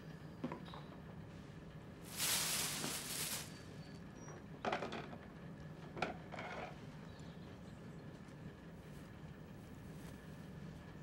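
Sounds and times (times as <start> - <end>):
faint room hum: 0.0 - 11.0
rustling among boxes: 2.1 - 3.6.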